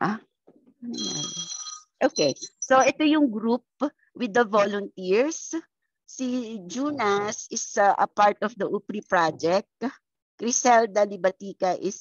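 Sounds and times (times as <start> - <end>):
electronic ringing tone: 0.9 - 2.9
low voice: 6.8 - 7.3.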